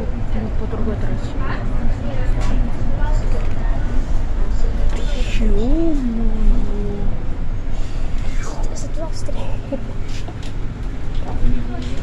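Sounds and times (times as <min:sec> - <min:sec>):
bus drivetrain and road rumble: 0:00.0 - 0:12.0.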